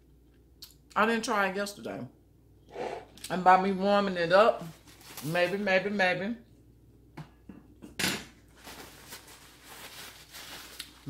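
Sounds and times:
paper napkins crinkling: 0:04.6 - 0:05.6, 0:08.5 - 0:11.0.

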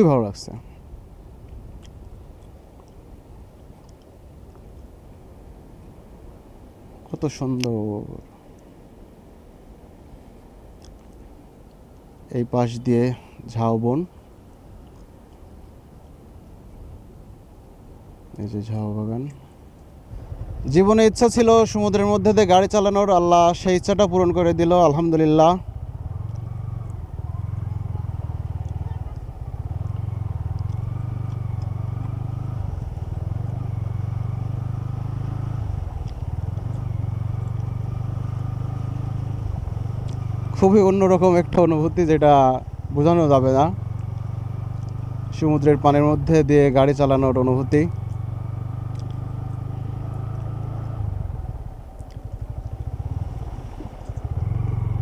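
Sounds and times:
motorcycle engine running: 0:20.0 - 0:55.0.

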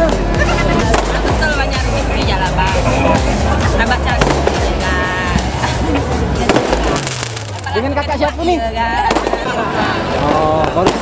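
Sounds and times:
crowd and street noise: 0:00.0 - 0:11.0
fireworks popping and crackling: 0:00.8 - 0:01.5, 0:04.0 - 0:05.6, 0:06.4 - 0:08.0, 0:09.0 - 0:11.0.

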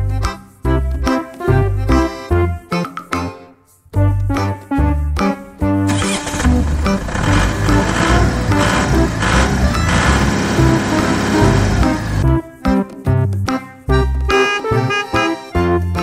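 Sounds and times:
bouncy keyboard music: 0:00.0 - 0:16.0
racing car engine roar: 0:05.9 - 0:12.2.

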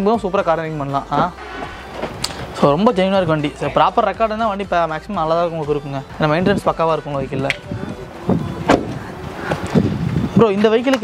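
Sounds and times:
car door slamming shut: 0:01.4 - 0:02.6, 0:08.2 - 0:09.8.

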